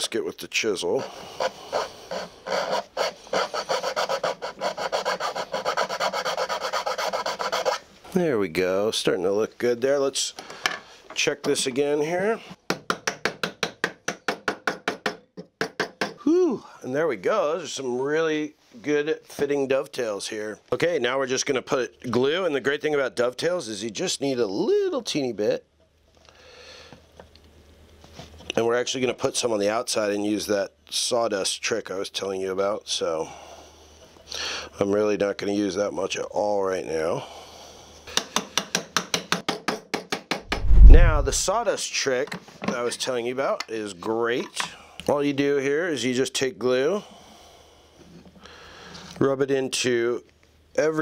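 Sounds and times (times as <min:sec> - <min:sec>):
loud low thump: 0:40.5 - 0:41.5.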